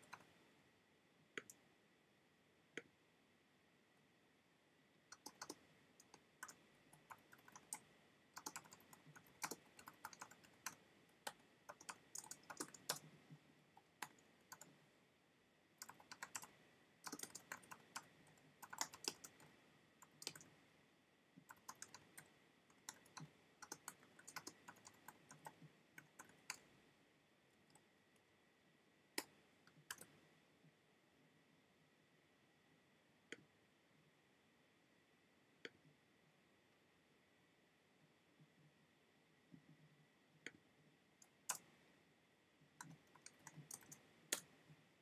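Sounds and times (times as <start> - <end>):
faint keyboard typing: 0.0 - 0.4, 1.3 - 1.7, 5.0 - 14.9, 15.8 - 20.7, 21.4 - 26.8, 27.5 - 28.3, 29.1 - 30.7, 39.5 - 41.8, 42.6 - 45.0.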